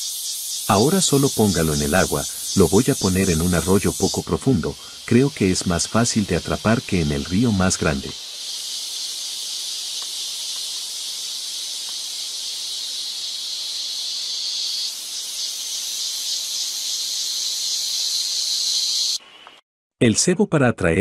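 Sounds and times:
insects buzzing drone: 0.0 - 19.6.

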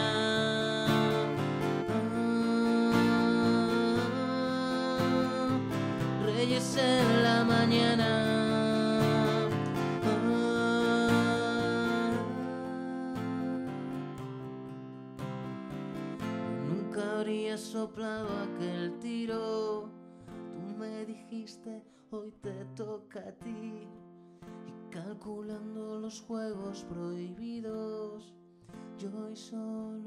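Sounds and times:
man singing: 0.0 - 14.2, 16.4 - 24.0, 24.8 - 28.4, 29.0 - 30.0
acoustic guitar strummed: 0.0 - 30.0.

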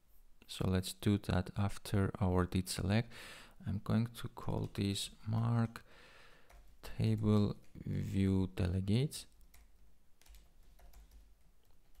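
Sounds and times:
typing on computer keyboard: 6.4 - 7.8, 9.3 - 12.0.

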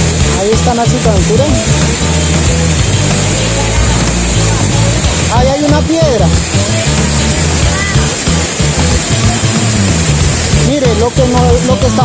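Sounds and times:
background music with bass notes: 0.0 - 12.0
waterfall rushing into pool: 0.0 - 12.0.

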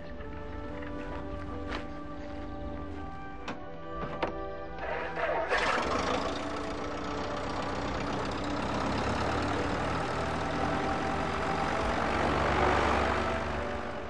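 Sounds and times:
engine running steadily: 4.8 - 14.0.

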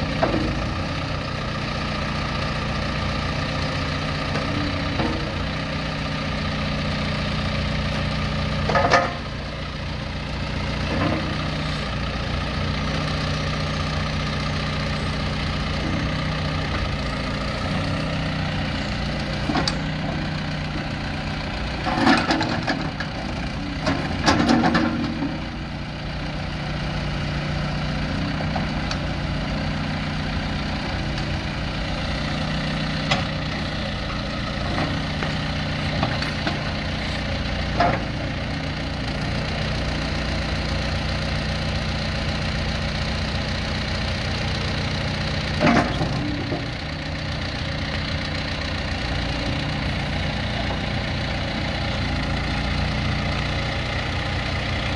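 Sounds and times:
diesel engine running: 0.0 - 54.9.

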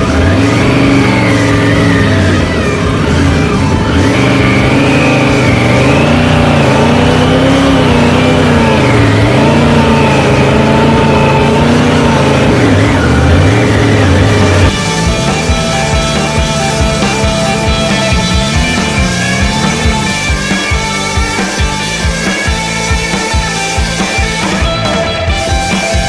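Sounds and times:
motorcycle engine revving: 0.0 - 26.0.

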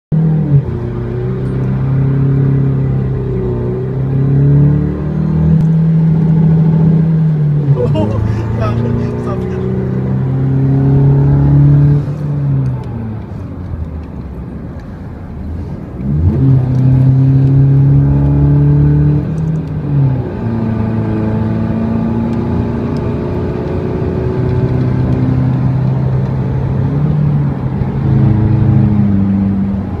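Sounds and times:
diesel engine accelerating through gears: 0.2 - 30.0.

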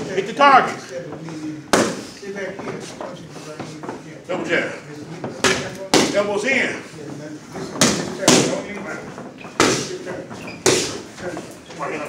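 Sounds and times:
boxing gloves striking mitts: 1.7 - 2.1, 5.3 - 6.4, 7.6 - 11.4.

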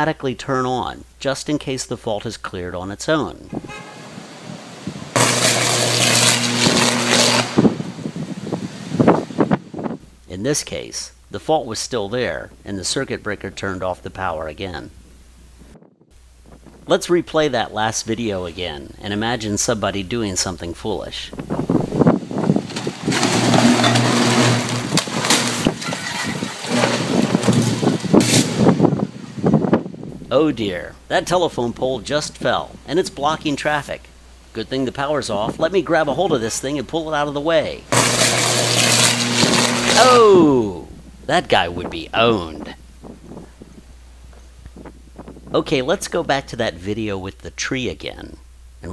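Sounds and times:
low electrical hum: 0.0 - 48.9
electrical buzz and crackle: 3.1 - 48.9.

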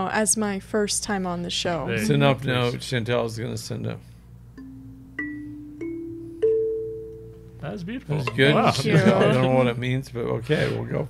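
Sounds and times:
kalimba notes plucked: 4.6 - 7.5.

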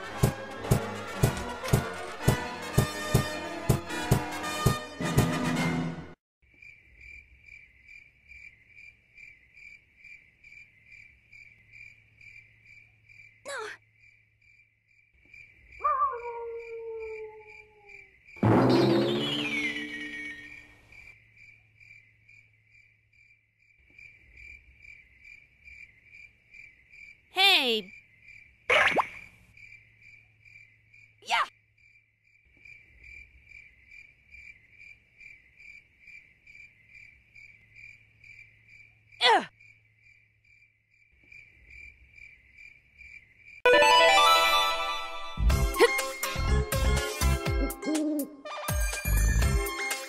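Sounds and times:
music: 0.0 - 6.2, 18.4 - 20.4, 43.7 - 50.0
crickets chirping: 6.4 - 18.4, 19.2 - 43.7.

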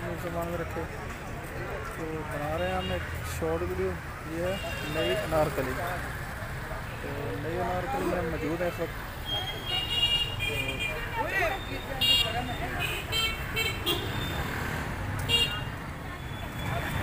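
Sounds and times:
traffic rumble: 0.0 - 17.0
vehicle horns tooting: 9.2 - 14.5, 15.2 - 16.7.

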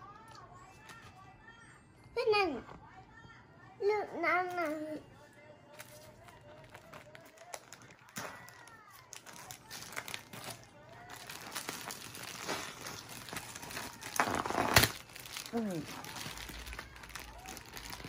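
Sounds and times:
plastic bag crinkling and rustling: 5.7 - 18.0.

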